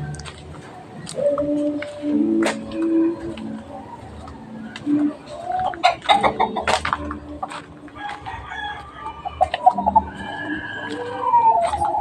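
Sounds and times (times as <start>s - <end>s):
rooster crowing: 8.0s - 12.0s.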